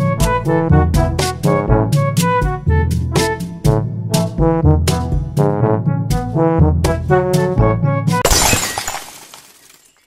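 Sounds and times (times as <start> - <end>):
brass note: 0.0 - 4.8
glass shattering: 8.2 - 10.0.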